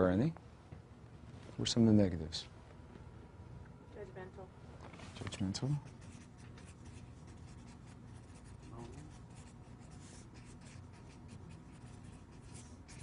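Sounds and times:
marker pen writing on paper: 5.8 - 13.0.

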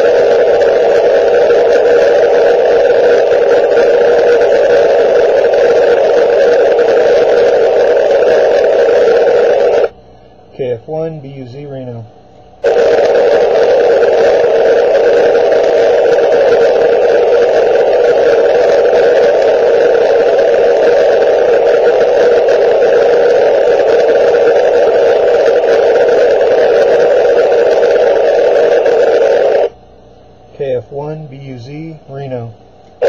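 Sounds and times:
radio static hiss: 0.0 - 33.0.

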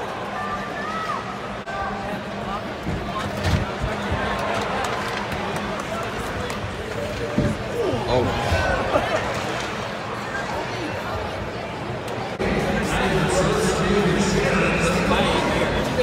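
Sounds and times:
crowd and players' voices: 0.0 - 16.0.

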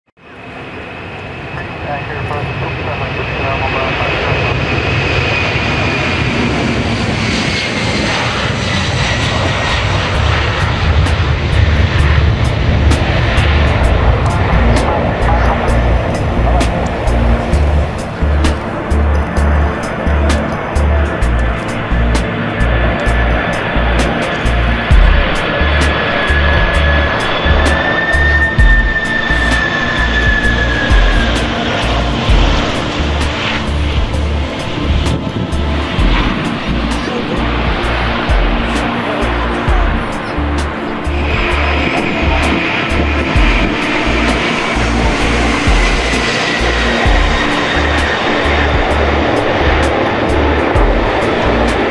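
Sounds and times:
jet engines roaring and whining: 0.2 - 51.9
music with thumping bass beat: 11.0 - 27.8, 28.5 - 29.6, 30.2 - 38.8, 39.6 - 51.8.

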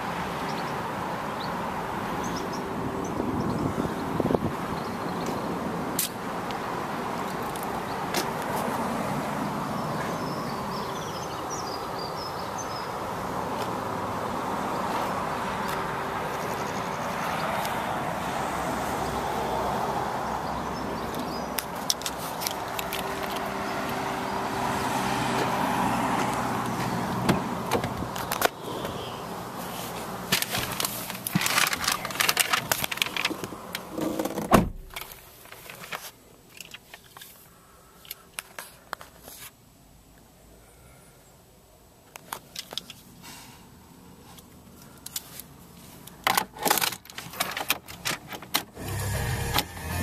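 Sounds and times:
car door clicks: 34.0 - 35.1
car engine running: 48.8 - 50.0.

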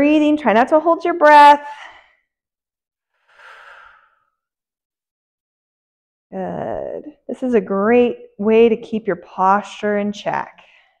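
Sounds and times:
woman breathing out: 3.2 - 4.4.

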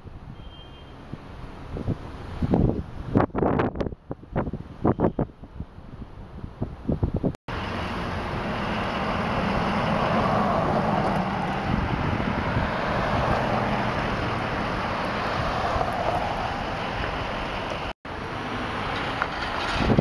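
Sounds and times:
vehicles driving by: 7.5 - 20.0.

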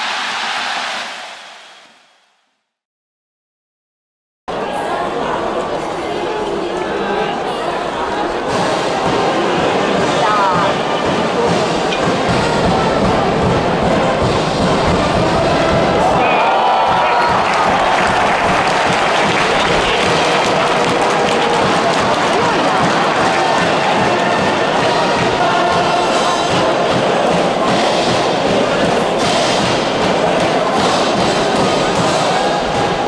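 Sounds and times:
crowd singing and shouting: 4.5 - 33.0
brass band playing: 9.3 - 28.7.

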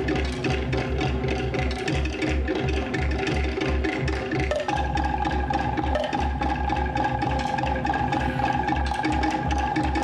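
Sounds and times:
pulsing low drum beat: 0.0 - 10.0.

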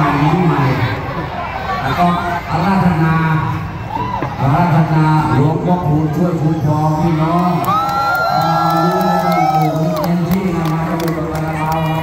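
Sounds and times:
crowd cheering and whooping: 3.8 - 4.5, 7.1 - 12.0.

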